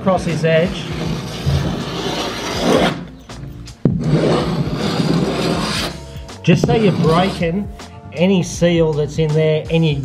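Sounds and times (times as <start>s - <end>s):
scraper scraping paint: 0.2s - 3.2s, 3.8s - 7.6s.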